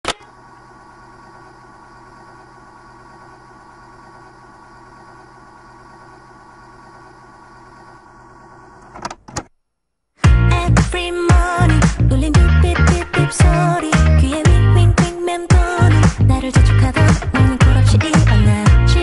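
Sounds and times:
motor hum: 0.0 - 9.3
tape hiss: 0.1 - 9.0.

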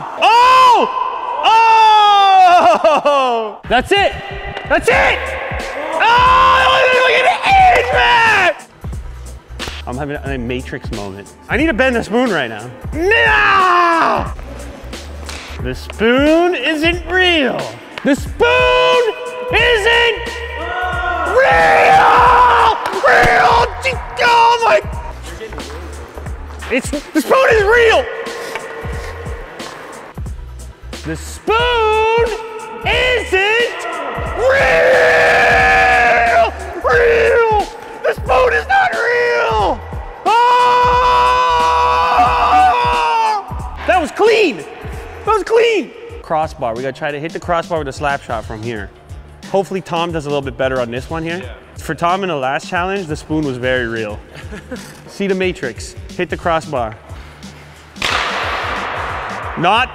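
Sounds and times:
man yelling: 0.0 - 4.1, 4.7 - 8.6, 12.9 - 14.3, 16.7 - 25.1, 27.1 - 28.4, 31.1 - 44.6
man shouting excitedly: 0.0 - 8.7, 12.0 - 14.4, 16.0 - 25.2, 26.8 - 29.0, 31.0 - 46.2
faint background music: 3.6 - 59.9.

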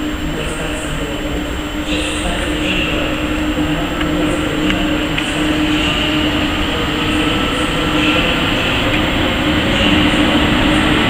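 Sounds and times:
electric locomotive rumbling: 0.0 - 11.0.

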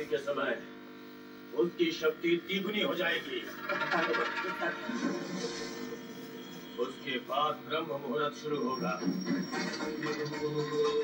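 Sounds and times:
television dialogue: 0.0 - 11.0
television background music: 1.5 - 11.0.

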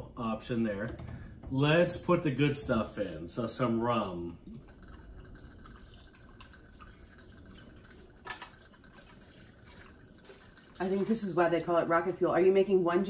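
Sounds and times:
liquid pouring onto ice: 4.4 - 11.7.

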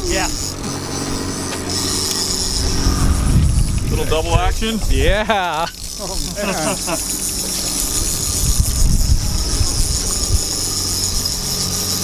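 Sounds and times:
fishing reel ratchet jingling: 0.0 - 2.8, 4.1 - 12.0
wind rumbling on microphone: 1.2 - 6.0, 7.2 - 11.6.

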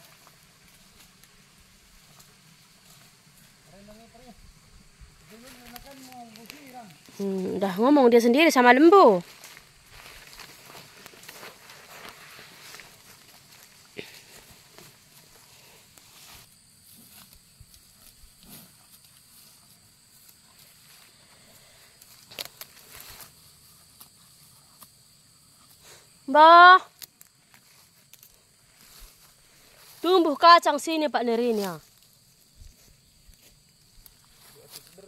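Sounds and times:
footsteps through grass and litter: 0.0 - 4.1, 5.1 - 7.9, 8.5 - 24.4, 27.2 - 35.0.

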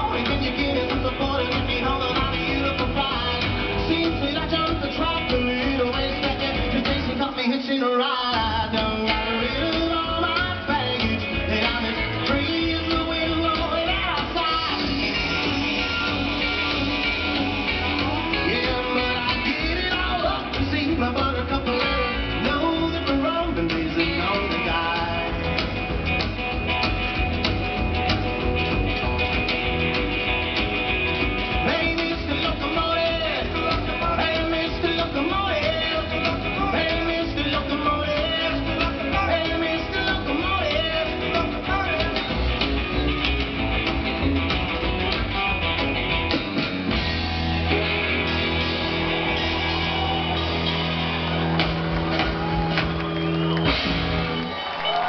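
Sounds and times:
person singing: 0.0 - 25.6, 31.5 - 42.5
electric guitars: 0.0 - 55.0
live rockabilly band: 0.0 - 55.0.

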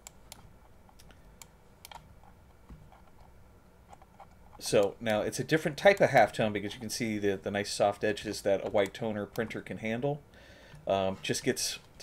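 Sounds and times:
keyboard and mouse clicks: 0.0 - 3.3.

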